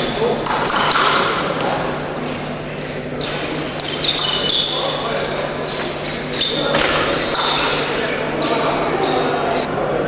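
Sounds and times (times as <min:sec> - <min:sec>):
echoing voices and chatter: 0:00.0 - 0:10.0.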